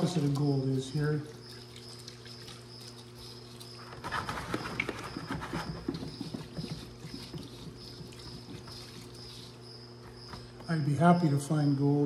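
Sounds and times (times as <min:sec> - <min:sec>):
low hum with high whine: 0:00.0 - 0:12.0.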